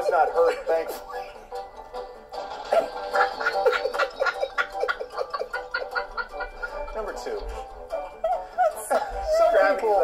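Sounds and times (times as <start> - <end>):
background music: 0.0 - 10.0
person laughing in bursts: 2.7 - 7.1.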